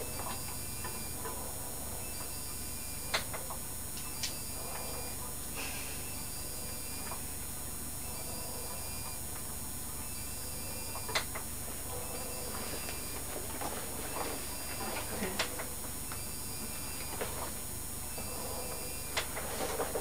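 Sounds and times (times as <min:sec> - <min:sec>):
background hiss: 0:00.0 - 0:20.0.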